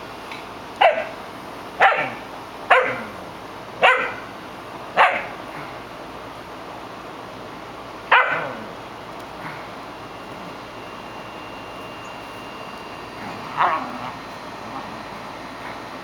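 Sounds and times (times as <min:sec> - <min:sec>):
small dog barking: 0:00.8 - 0:01.2, 0:01.8 - 0:03.2, 0:03.8 - 0:04.3, 0:05.0 - 0:05.4, 0:08.1 - 0:08.8, 0:13.4 - 0:14.2.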